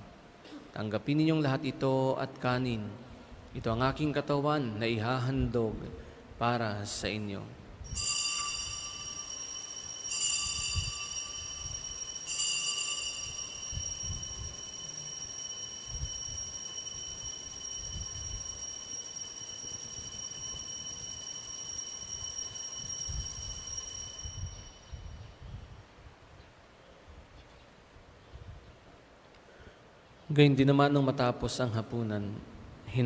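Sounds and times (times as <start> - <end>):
altar bells ringing: 7.9 - 25.4.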